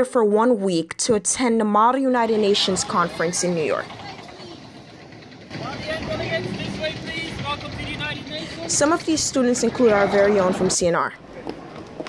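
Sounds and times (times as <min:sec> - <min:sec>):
people talking: 0:00.0 - 0:11.7
city traffic rumble: 0:00.9 - 0:12.0.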